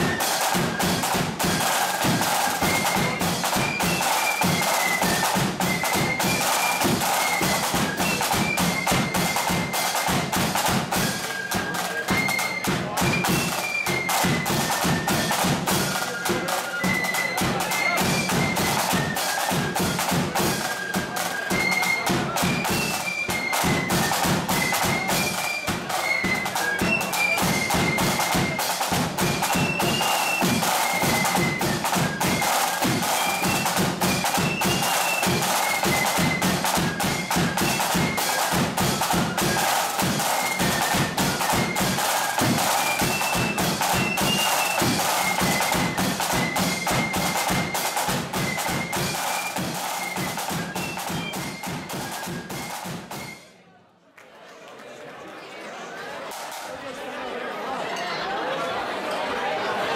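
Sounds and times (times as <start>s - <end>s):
side drum patterns: 0.0s - 53.5s
flutes playing shrill melody: 0.0s - 53.6s.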